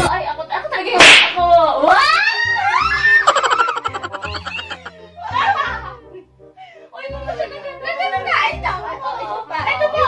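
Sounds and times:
sharp smack: 0:01.0 - 0:01.4
women shrieking: 0:01.9 - 0:04.9
women laughing: 0:03.2 - 0:05.8.

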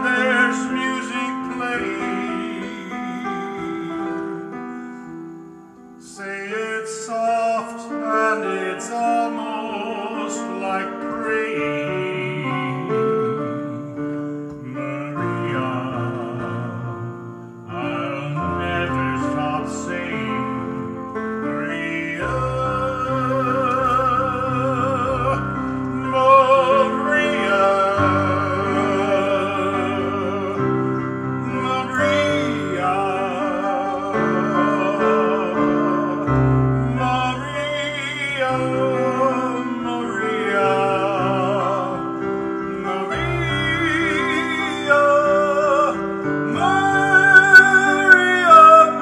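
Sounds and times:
man singing operatically: 0:00.0 - 0:04.8, 0:06.0 - 0:49.0
electric keyboard chords: 0:00.0 - 0:49.0.

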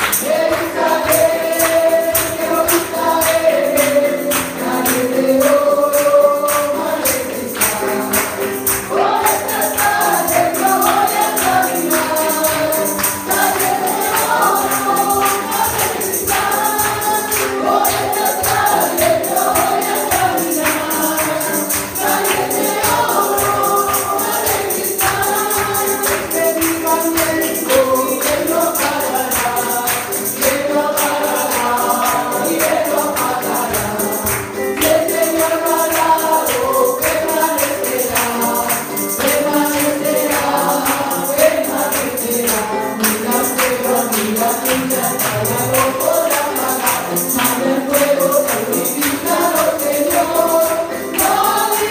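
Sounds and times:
congregation singing praise song: 0:00.0 - 0:51.9
high jingling beat: 0:00.0 - 0:51.9
live musical accompaniment: 0:00.0 - 0:51.9.

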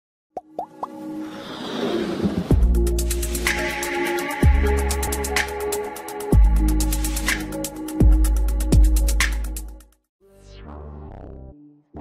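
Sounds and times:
quick plops rising in pitch: 0:00.4 - 0:01.0
music: 0:00.4 - 0:12.0.

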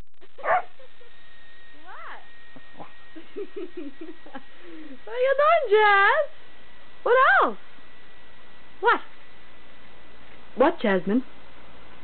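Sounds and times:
dog high-pitched vocalizing: 0:00.4 - 0:00.7.

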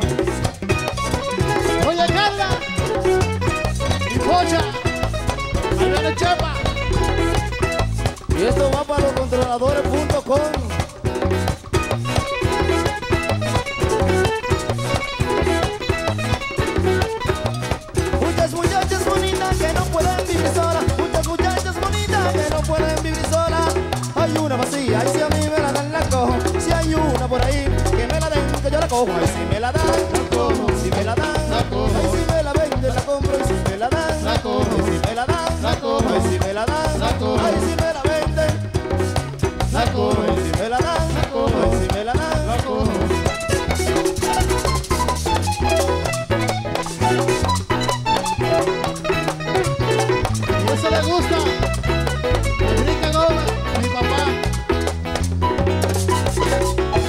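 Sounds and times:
acoustic guitar melody: 0:00.0 - 0:57.0
bass line: 0:00.0 - 0:57.0
live merengue band playing: 0:00.0 - 0:57.0
percussion beat: 0:00.0 - 0:57.0.

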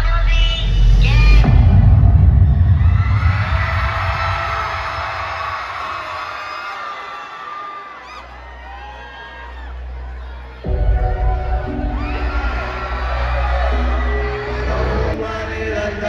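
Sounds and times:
heavy bass from pa: 0:00.0 - 0:06.2
crowd cheering and screaming: 0:01.3 - 0:16.0.

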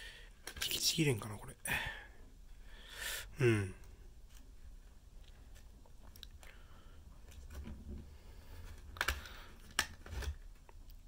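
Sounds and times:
plastic packaging clicks: 0:08.9 - 0:10.8.

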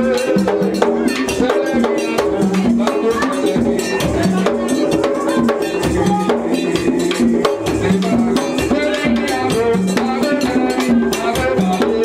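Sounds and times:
drums and percussion: 0:00.0 - 0:12.0
group singing: 0:00.0 - 0:12.0
ringing bell beat: 0:00.0 - 0:12.0.

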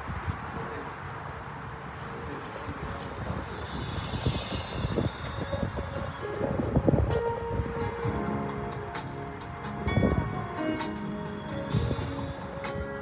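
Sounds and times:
keyboard chords: 0:02.6 - 0:13.0.

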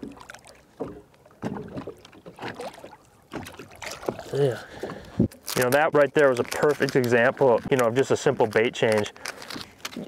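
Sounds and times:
water splashing and sloshing: 0:00.0 - 0:08.6.

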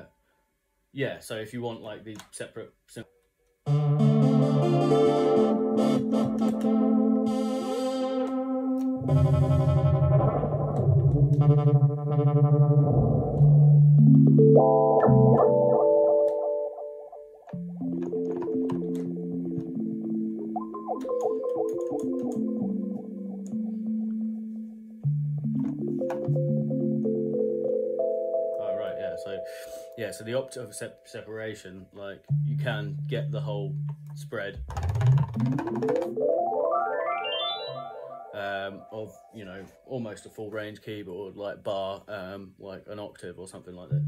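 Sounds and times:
synthesizer chords: 0:03.6 - 0:31.4, 0:34.8 - 0:39.9
low synth bass note: 0:03.7 - 0:15.8.

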